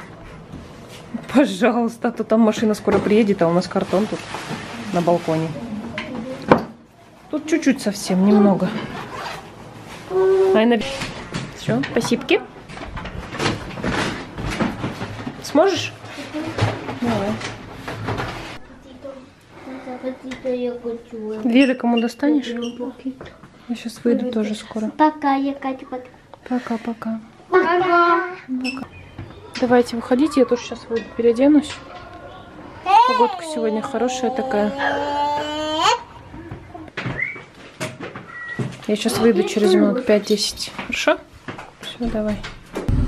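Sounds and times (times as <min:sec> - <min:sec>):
jacket zipper rasping: 0:08.9 - 0:09.5.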